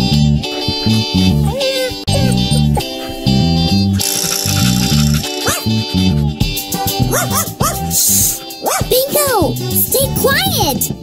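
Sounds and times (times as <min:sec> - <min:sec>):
bouncy music with plucked bass: 0:00.0 - 0:11.0
cartoon dog barking: 0:00.9 - 0:03.2, 0:05.4 - 0:05.8, 0:07.1 - 0:09.3.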